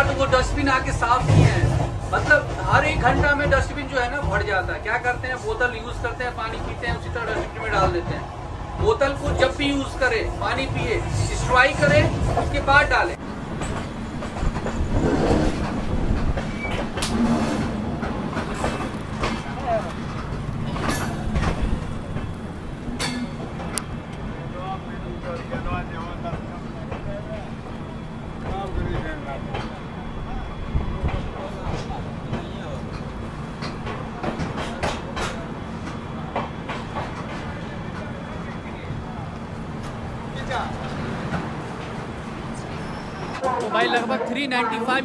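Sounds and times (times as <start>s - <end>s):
train coach rumbling: 0.0s - 45.0s
train wheels clicking and knocking: 0.0s - 45.0s.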